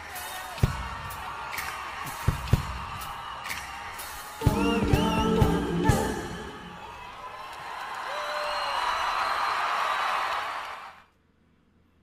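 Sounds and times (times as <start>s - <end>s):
concert audience cheering: 0.0s - 11.1s
live pop song: 4.4s - 6.8s.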